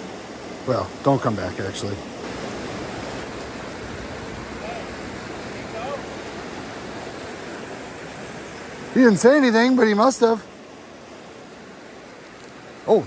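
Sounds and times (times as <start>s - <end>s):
river water churning over rapids: 0.0s - 13.0s.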